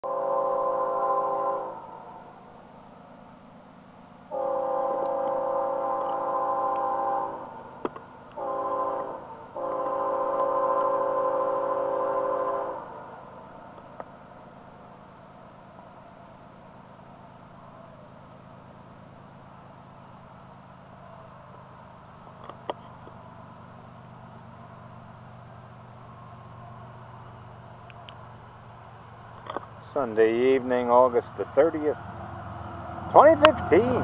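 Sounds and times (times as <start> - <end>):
locomotive horn blasts: 0.0 - 2.6, 4.3 - 13.6.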